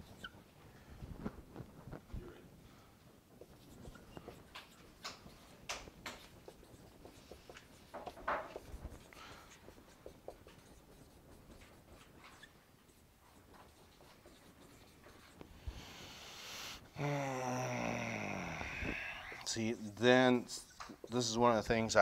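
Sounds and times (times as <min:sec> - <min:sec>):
marker scratching on whiteboard: 0:00.0 - 0:00.4, 0:03.3 - 0:16.9, 0:19.0 - 0:22.0
man muttering: 0:16.9 - 0:20.0.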